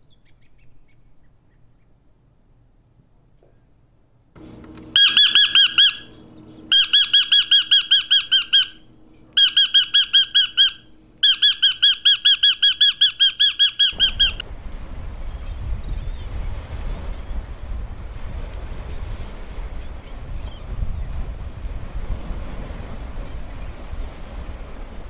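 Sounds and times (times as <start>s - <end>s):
parrot chirping: 4.9s - 14.4s.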